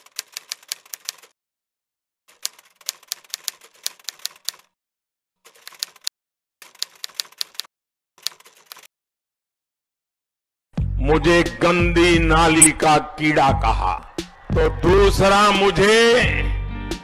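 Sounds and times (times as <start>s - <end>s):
typewriter keys clacking: 0.0s - 1.3s, 2.3s - 4.7s, 5.5s - 8.9s.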